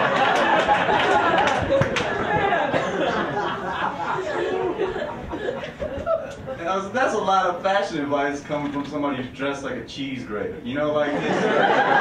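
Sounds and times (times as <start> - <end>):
audience laughing: 0.0 - 6.7, 11.0 - 12.0
audience chattering: 0.0 - 8.2.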